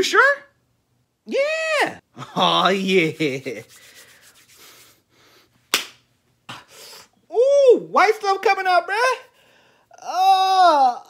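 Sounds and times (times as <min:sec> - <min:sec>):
hand slapping skin: 0:05.7 - 0:06.7.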